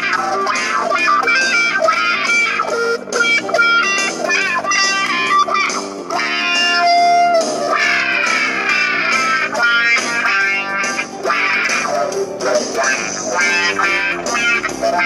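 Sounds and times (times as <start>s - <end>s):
electric guitar blues shuffle: 0.0s - 15.0s.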